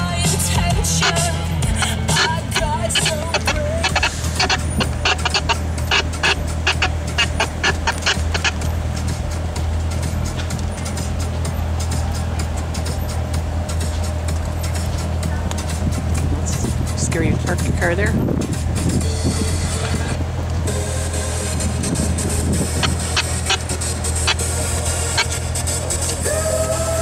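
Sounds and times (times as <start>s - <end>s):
car engine low drone: 0.0s - 27.0s
music with clicking beat: 0.0s - 27.0s.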